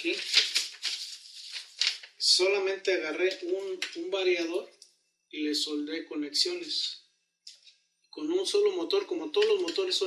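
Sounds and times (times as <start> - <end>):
paper rustling: 0.0 - 2.2.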